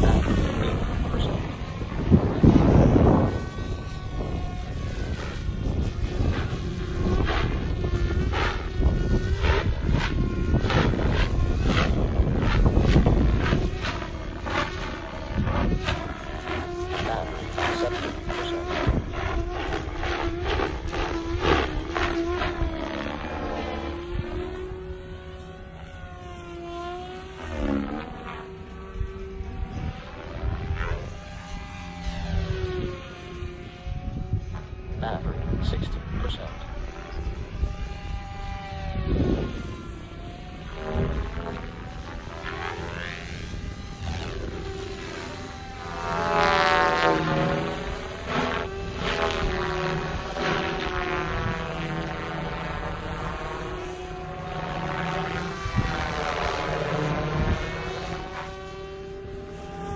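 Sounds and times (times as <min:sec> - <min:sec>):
wind noise on microphone: 0:00.0 - 0:25.8, 0:27.4 - 0:59.9
rc helicopter rotor whine: 0:00.0 - 0:59.9.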